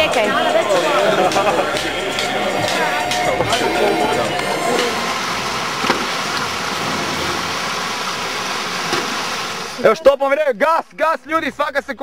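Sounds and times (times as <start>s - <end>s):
stream rushing over rocks: 2.8s - 10.0s.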